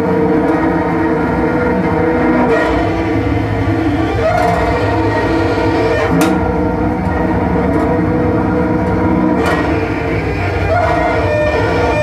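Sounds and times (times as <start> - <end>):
bowed cello tones: 0.0 - 12.0.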